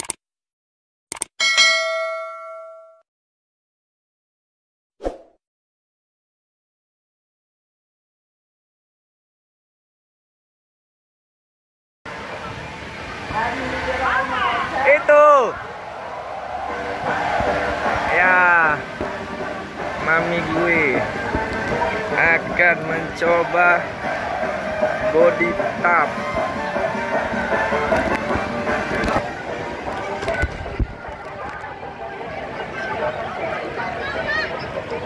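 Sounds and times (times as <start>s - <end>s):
notification bell ding: 1.4s - 3.0s
faint background chatter: 28.7s - 35.0s.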